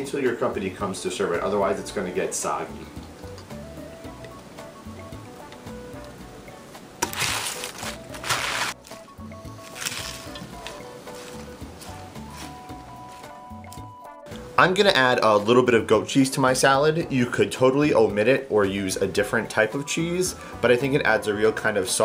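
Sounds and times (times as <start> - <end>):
background music: 0.0 - 22.0
salad leaves rustling in a bowl: 7.1 - 13.3.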